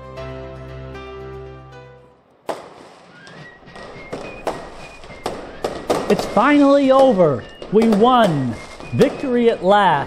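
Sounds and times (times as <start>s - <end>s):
fireworks bangs: 2.3s - 10.0s
fireworks crackling: 2.3s - 10.0s
high fireworks whistles: 2.5s - 10.0s.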